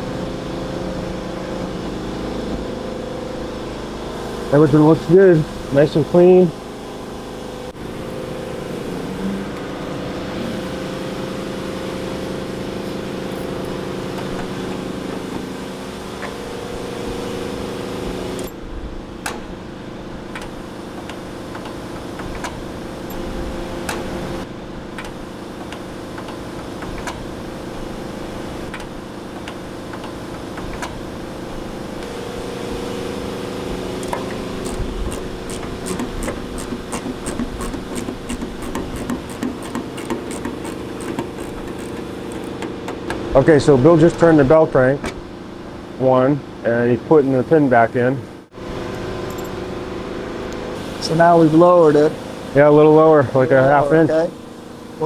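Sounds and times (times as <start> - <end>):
machine hum: 0.0 - 55.0
quick regular ticks: 34.0 - 42.7.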